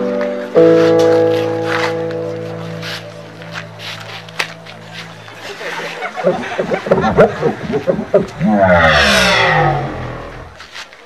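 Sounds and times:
loud voices: 0:06.0 - 0:10.6.

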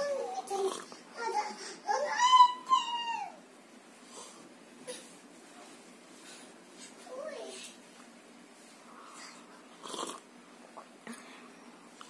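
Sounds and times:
child's high-pitched cry: 0:01.2 - 0:03.4.

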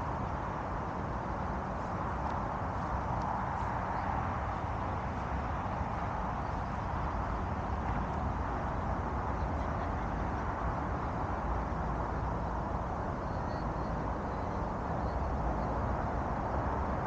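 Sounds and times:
wind blowing across microphone: 0:00.0 - 0:17.0.

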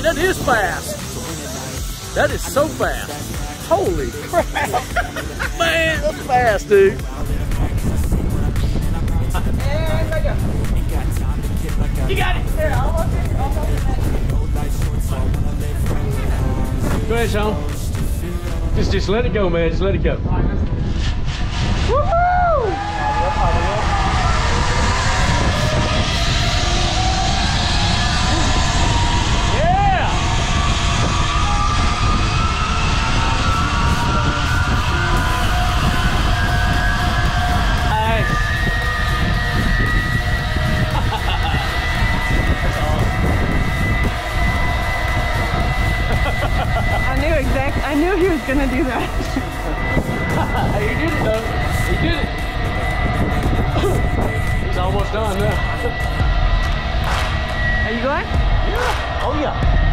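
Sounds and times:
wind buffeting microphone: 0:05.6 - 0:59.9
person whooping: 0:21.9 - 0:24.1, 0:58.7 - 0:59.1
zip line trolley whining: 0:21.9 - 0:59.9.

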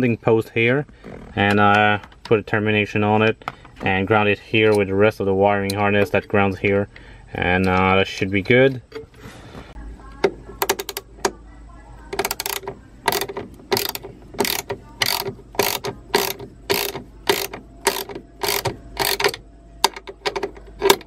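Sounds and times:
socket ratchet clicking: 0:10.6 - 0:11.4, 0:12.2 - 0:21.0.

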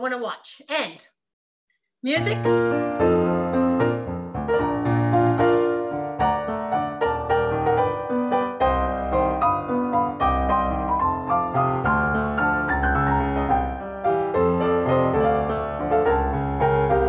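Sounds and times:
piano playing chords and melody: 0:02.2 - 0:17.0.

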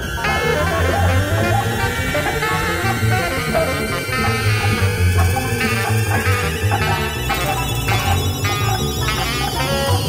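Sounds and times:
jazz ensemble playing: 0:00.0 - 0:10.0.

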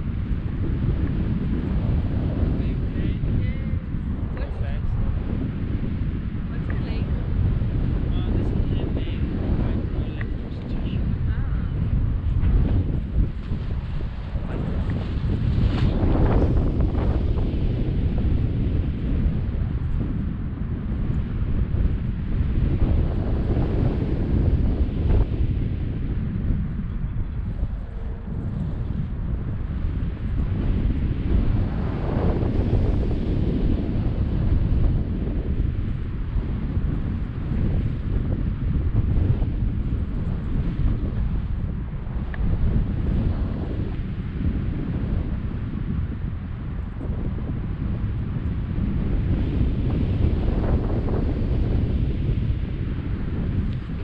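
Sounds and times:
wind buffeting camera microphone: 0:00.0 - 0:54.0.

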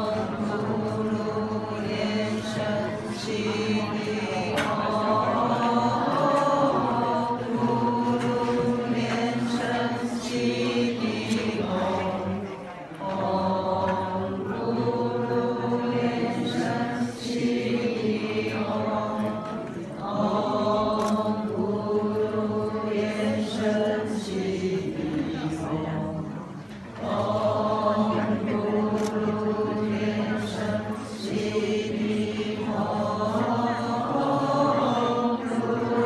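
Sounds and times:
group of voices chanting: 0:27.0 - 0:36.0.

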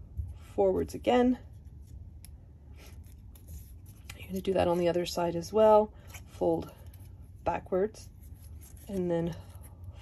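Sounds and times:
paper rustling: 0:01.5 - 0:05.0, 0:08.0 - 0:09.7.

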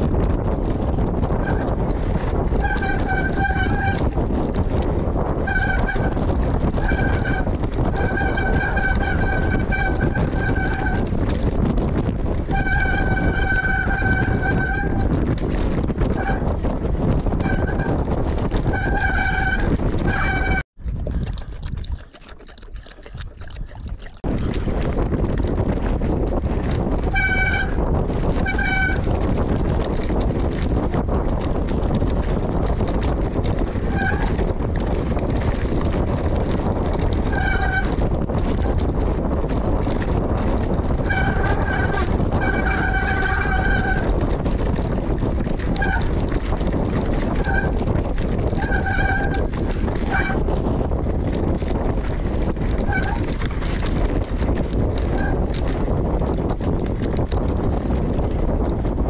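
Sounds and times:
bike tyres rumbling on trail: 0:00.0 - 0:59.0
wind on camera: 0:00.0 - 0:59.0
high-pitched bike squeals: 0:02.6 - 0:04.0, 0:05.4 - 0:06.2, 0:12.5 - 0:15.1, 0:18.7 - 0:20.6, 0:41.0 - 0:44.2.

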